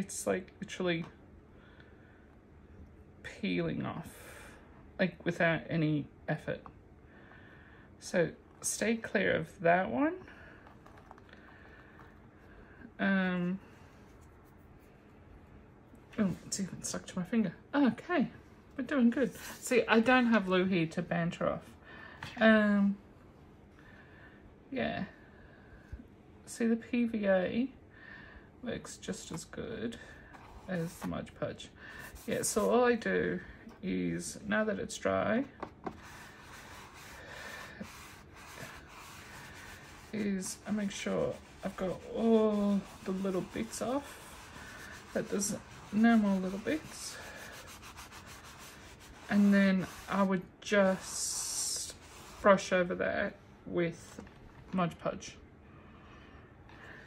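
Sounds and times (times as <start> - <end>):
fingertips scratching paper: 35.8 - 50.3.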